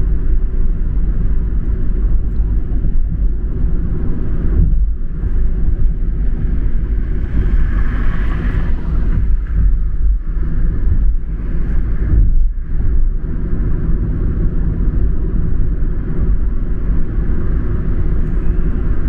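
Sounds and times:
car road and engine rumble: 0.0 - 19.0.

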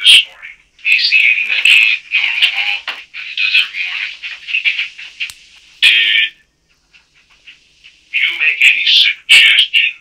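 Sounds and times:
tinny recorded speech: 0.0 - 6.4, 8.0 - 10.0.

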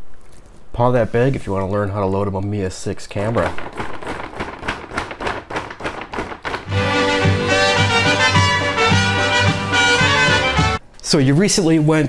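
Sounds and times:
cat scratching plastic bag: 3.4 - 6.7
swing music with brass: 6.7 - 10.8.

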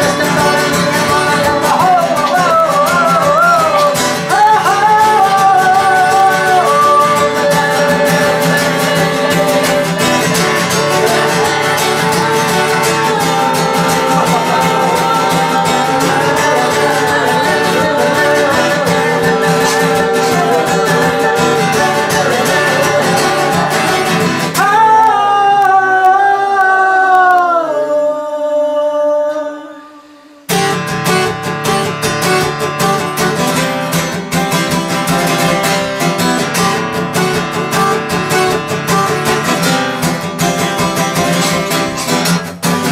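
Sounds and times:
man singing: 0.0 - 30.8
acoustic guitar: 0.0 - 42.9.

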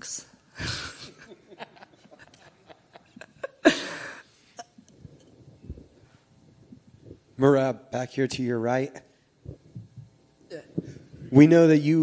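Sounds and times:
faint hum: 0.0 - 12.0
microphone handling thumps: 9.4 - 11.4.

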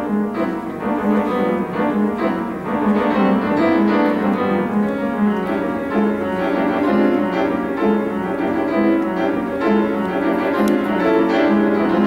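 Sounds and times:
solo grand piano: 0.0 - 12.0.

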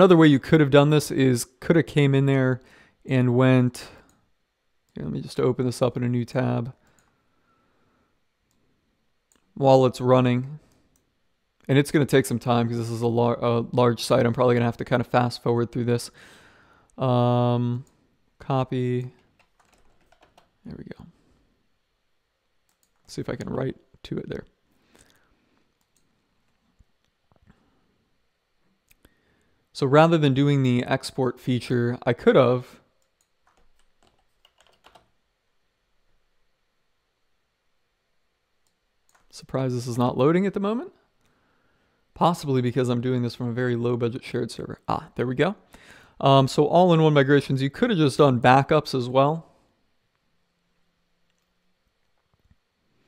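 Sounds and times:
faint keyboard typing: 6.8 - 7.2, 19.0 - 21.1, 22.6 - 23.6, 24.9 - 27.5, 33.0 - 35.2, 38.6 - 39.4.

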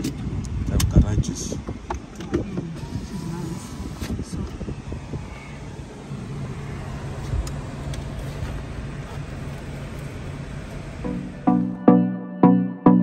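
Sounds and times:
car engine running: 0.0 - 11.8
road noise: 0.0 - 11.8
steady low hum: 2.8 - 11.8.

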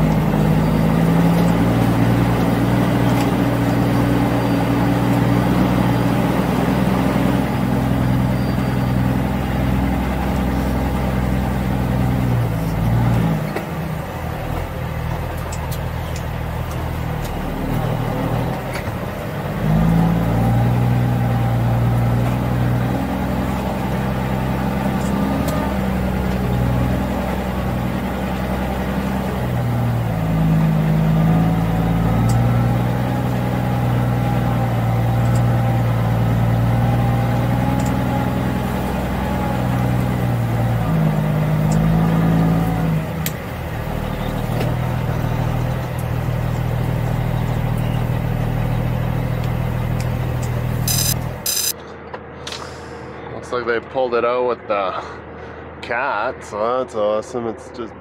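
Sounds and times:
diesel truck engine under load: 0.0 - 53.2.

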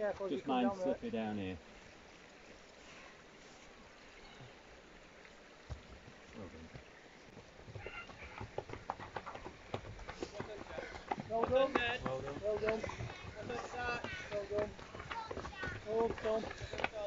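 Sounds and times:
footsteps on footbridge: 6.8 - 17.0.

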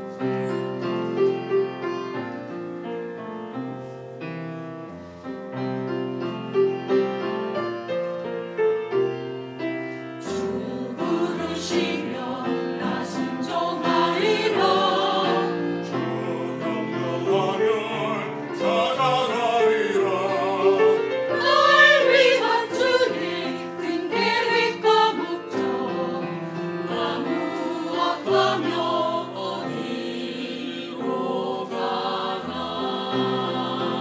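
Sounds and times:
piano chords: 0.0 - 34.0
church choir singing: 10.0 - 34.0.

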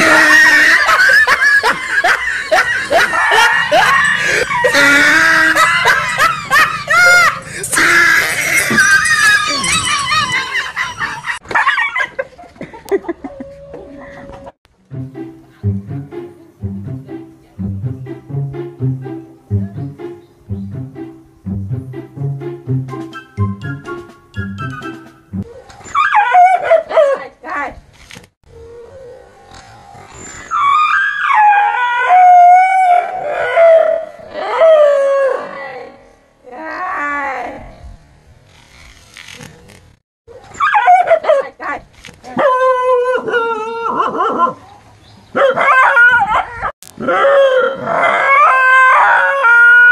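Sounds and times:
dog yelping: 2.3 - 12.1, 25.8 - 27.2, 40.3 - 41.5, 42.4 - 44.6, 45.4 - 49.9
dog howling: 3.0 - 7.4, 45.4 - 49.9.

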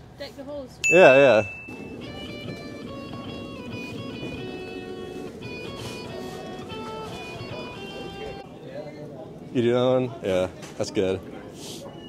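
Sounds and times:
electric guitar melody: 0.9 - 8.4.

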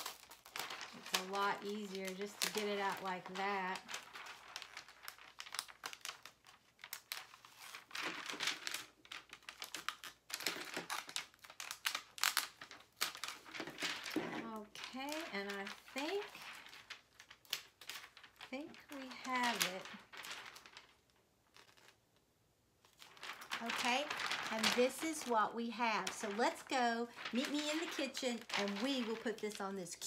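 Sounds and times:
plastic sheet crinkling: 0.0 - 30.0.

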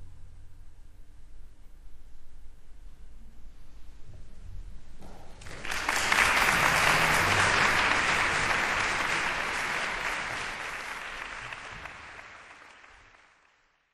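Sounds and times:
audience applauding: 5.4 - 13.9.

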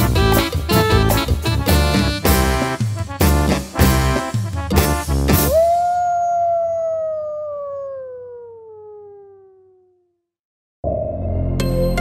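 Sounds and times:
wolf-like howl: 5.5 - 10.0.

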